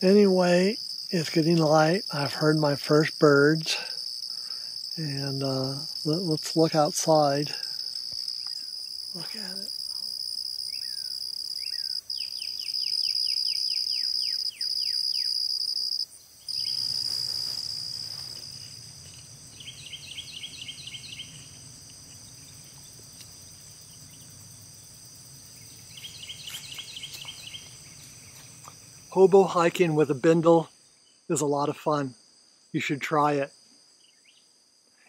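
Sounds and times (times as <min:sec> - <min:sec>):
high insect drone: 0:00.0 - 0:35.0
birds calling: 0:10.7 - 0:15.4, 0:18.7 - 0:23.2, 0:25.5 - 0:28.7.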